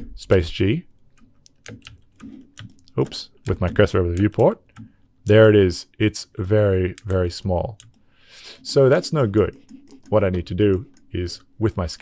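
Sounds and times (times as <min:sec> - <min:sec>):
computer keyboard clicks: 0:01.2 - 0:04.9, 0:09.2 - 0:11.1.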